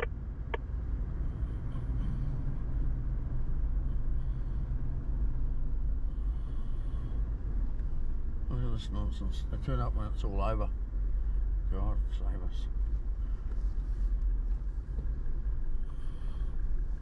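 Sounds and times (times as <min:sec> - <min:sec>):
car engine and road rumble: 0:00.0 - 0:17.0.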